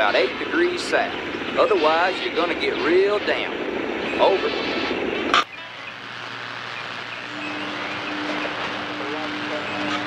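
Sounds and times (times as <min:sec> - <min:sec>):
radio static hiss: 0:00.0 - 0:10.0.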